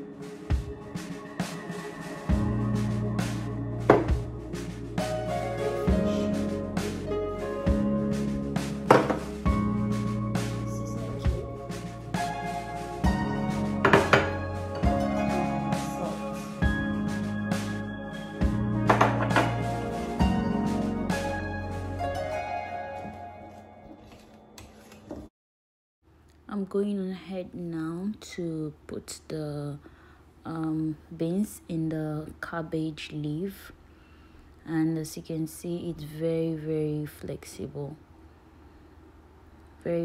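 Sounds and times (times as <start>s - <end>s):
background music with soft beat: 0.0s - 24.2s.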